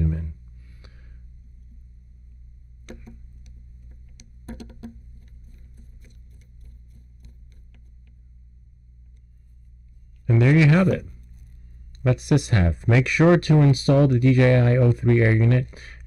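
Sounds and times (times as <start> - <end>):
steady low hum: 0.0 - 16.0
screwdriver clicks and taps: 2.8 - 8.2.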